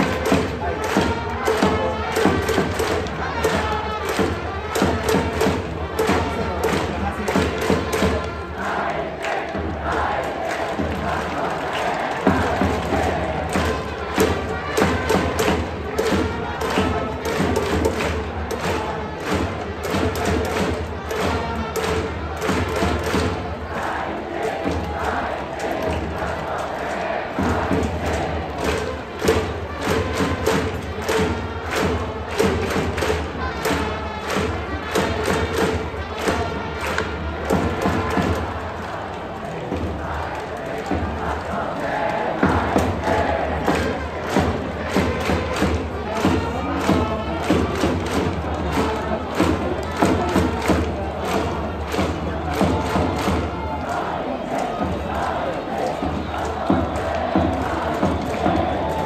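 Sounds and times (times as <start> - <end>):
drum beating: 0.0 - 59.0.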